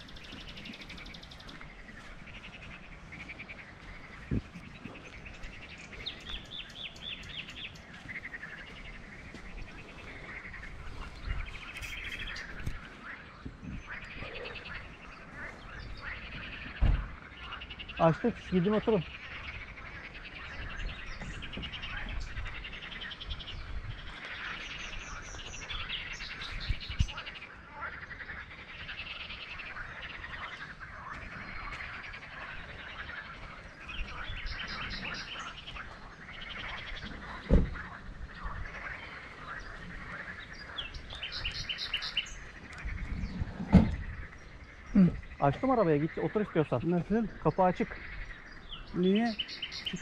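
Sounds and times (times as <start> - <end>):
birds chirping: 0.0 - 50.0
frogs croaking: 0.0 - 50.0.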